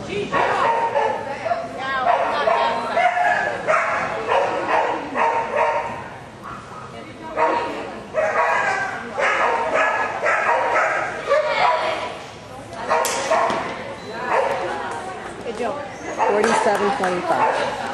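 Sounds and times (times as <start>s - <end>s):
dog barking: 0.3s - 1.3s, 2.0s - 12.0s, 12.9s - 13.6s, 14.3s - 14.6s, 16.1s - 16.8s, 17.4s - 17.8s.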